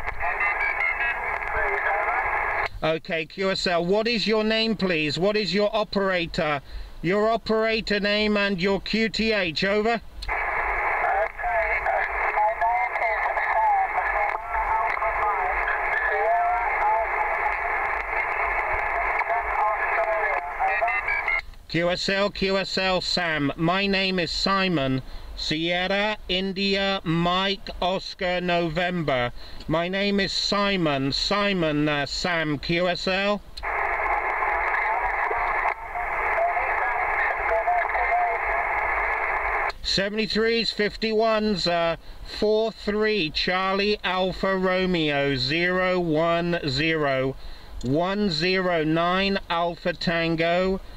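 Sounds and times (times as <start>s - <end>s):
weak garbled radio voice: 0.0s - 2.7s, 10.3s - 21.4s, 33.6s - 39.8s
narrow-band radio speech: 0.0s - 50.8s
radio static hiss: 0.0s - 50.9s.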